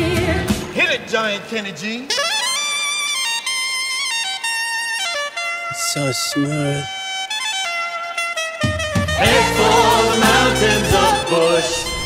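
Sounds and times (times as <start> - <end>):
soprano saxophone melody: 2.1 - 12.0.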